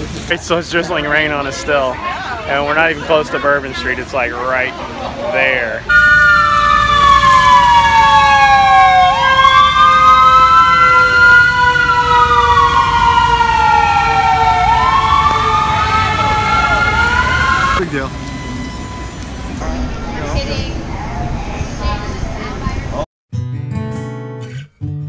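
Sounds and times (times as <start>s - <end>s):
ambulance siren wailing: 5.9s - 20.0s.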